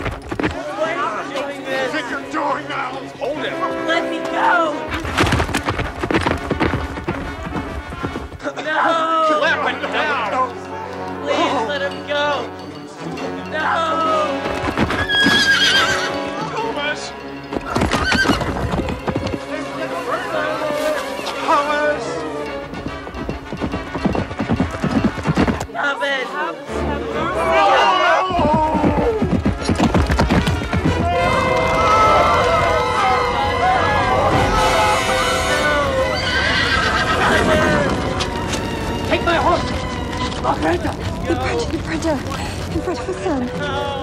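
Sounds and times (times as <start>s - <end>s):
hooves clattering: 0.0s - 25.8s, 27.4s - 44.0s
music: 0.0s - 44.0s
horse whinnying: 14.8s - 16.4s, 17.6s - 18.8s, 32.8s - 38.7s.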